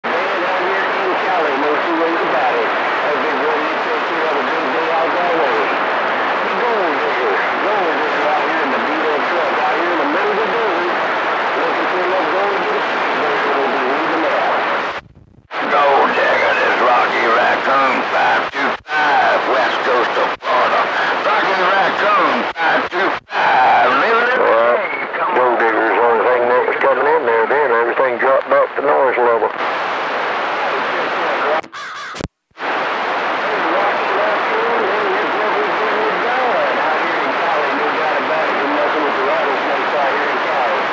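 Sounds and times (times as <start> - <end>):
radio static: 0.0 - 40.9
voices over radio: 0.0 - 40.9.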